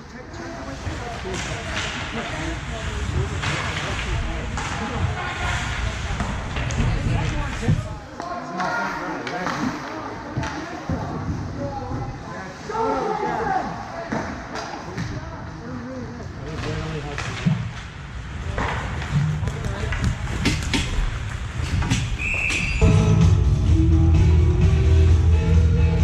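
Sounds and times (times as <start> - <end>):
hockey sticks and puck clacking: 0.8 - 12.0, 14.1 - 15.2, 16.6 - 22.8
referee's whistle blast: 22.2 - 23.0.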